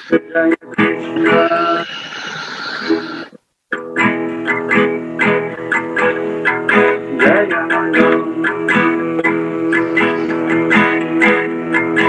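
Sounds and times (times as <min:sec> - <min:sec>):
man singing: 0:00.0 - 0:01.9, 0:07.1 - 0:12.0
guitar strumming: 0:00.0 - 0:12.0.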